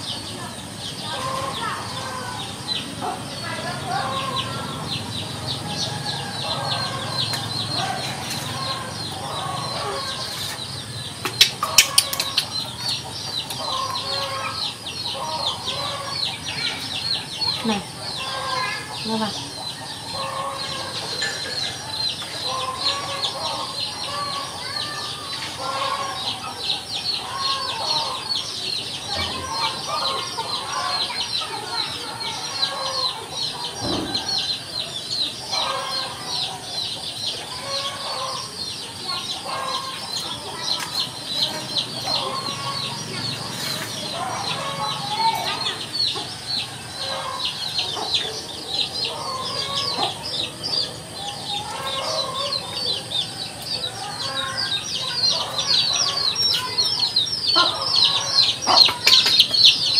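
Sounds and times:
chickens clucking: 0:00.0 - 0:59.9
fast high peeping calls: 0:00.0 - 0:59.9.

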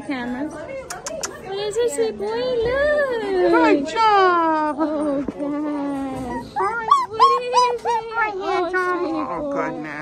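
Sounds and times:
puppy whining: 0:05.0 - 0:10.0.

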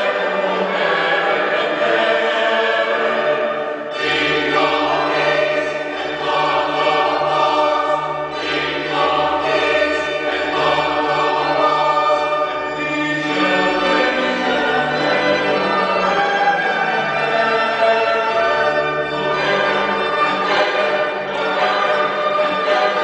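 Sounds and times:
choir singing sustained chords: 0:00.0 - 0:23.0.

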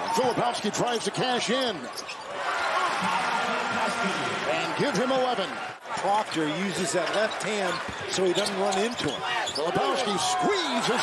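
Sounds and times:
arena crowd cheering: 0:00.0 - 0:11.0.

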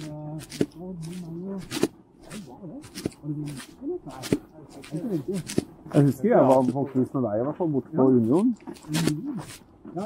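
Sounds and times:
footsteps crunching on snow: 0:00.0 - 0:10.0
quiet talking: 0:00.0 - 0:10.0.

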